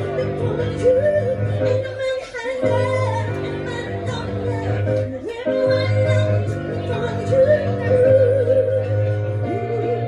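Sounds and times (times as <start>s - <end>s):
woman singing with vibrato: 0.0s - 10.0s.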